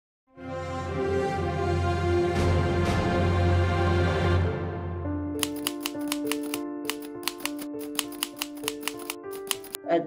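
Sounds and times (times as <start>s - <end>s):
slow background music: 0.3s - 10.0s
typewriter key strikes: 5.4s - 9.8s.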